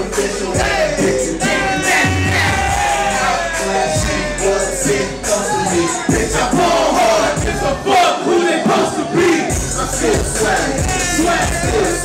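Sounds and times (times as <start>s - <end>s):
hip hop beat: 0.0s - 12.0s
voices shouting together: 0.5s - 9.6s.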